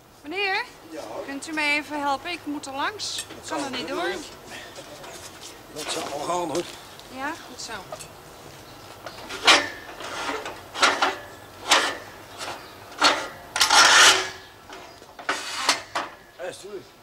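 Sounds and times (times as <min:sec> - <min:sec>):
metal scaffolding scraping on paving: 0:02.6 - 0:06.8, 0:09.0 - 0:16.4.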